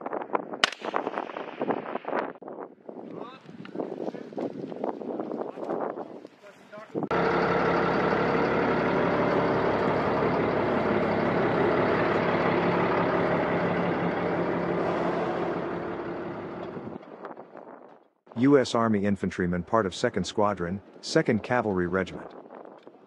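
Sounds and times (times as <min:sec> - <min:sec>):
diesel engine running: 0:07.1 - 0:17.0.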